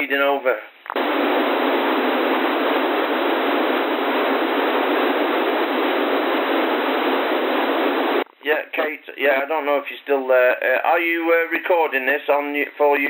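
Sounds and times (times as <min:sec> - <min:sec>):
radio receiver hiss: 0:00.8 - 0:08.5.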